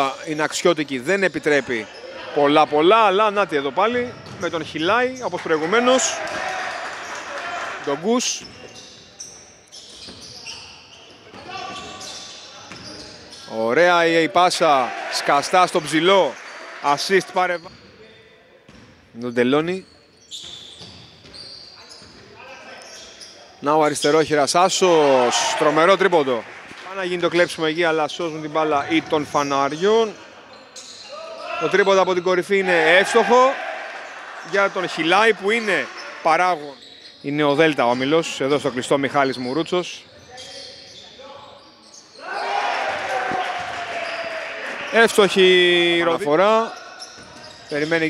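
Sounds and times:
shoes squeaking on floor: 0.0 - 7.2, 7.9 - 13.9, 17.4 - 23.6, 28.0 - 33.2, 34.0 - 48.0
gym hall noise: 0.0 - 48.0.

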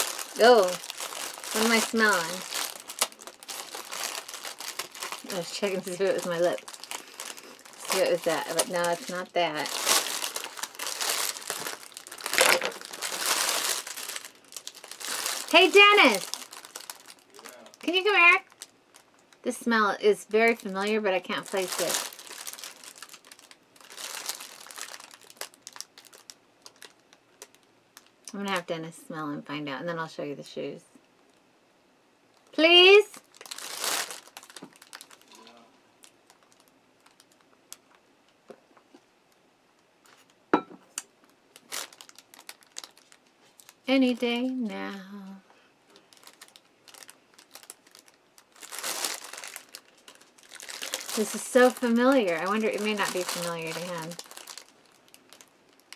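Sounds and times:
plastic bag crinkling: 0.0 - 19.4, 20.4 - 28.6, 32.4 - 38.0, 41.1 - 45.0, 45.9 - 55.9
small crackles and clicks: 0.0 - 19.5, 20.5 - 28.7, 32.3 - 45.1, 45.9 - 55.9.

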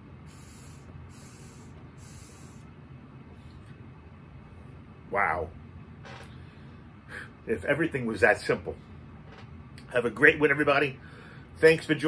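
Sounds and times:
hiss: 0.2 - 2.7.

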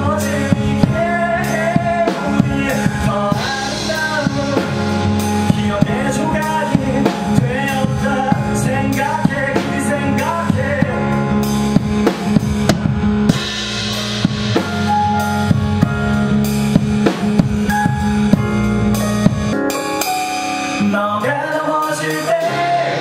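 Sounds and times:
drum kit beating rhythm: 0.0 - 23.0
electric bass: 0.0 - 23.0
live band playing: 0.0 - 23.0
stage piano: 0.0 - 23.0.

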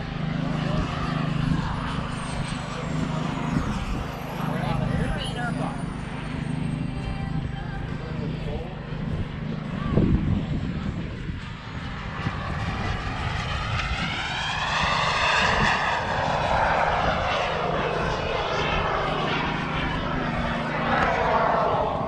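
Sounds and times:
model jet turbine flying past: 0.0 - 22.0.

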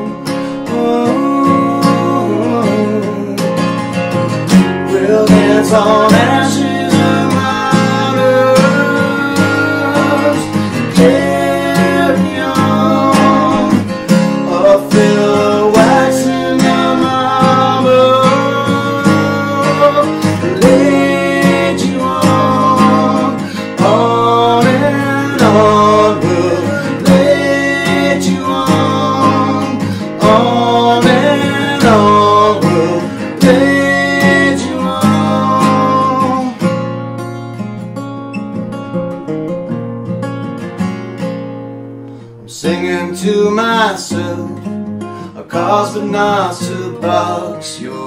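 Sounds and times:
acoustic guitar strummed: 0.0 - 48.0
men humming a melody: 14.6 - 36.4.

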